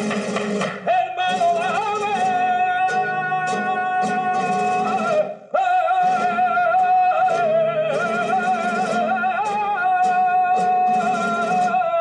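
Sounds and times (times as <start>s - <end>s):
flamenco guitar strums: 0.0s - 12.0s
man singing flamenco: 0.8s - 12.0s.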